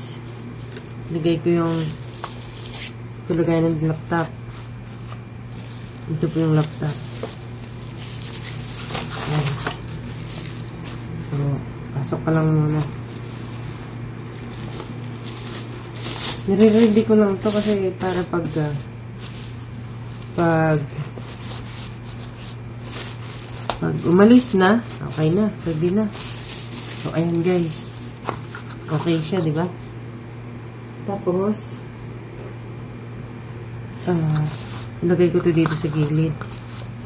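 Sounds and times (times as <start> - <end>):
steady low hum: 0.0 - 37.0
plastic sleeve crinkling: 0.4 - 3.0, 4.4 - 11.4, 12.7 - 29.4, 35.4 - 37.0.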